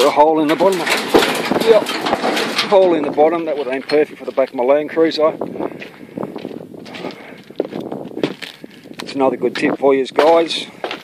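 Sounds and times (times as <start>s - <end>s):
footsteps on dry dirt: 2.2s - 11.0s.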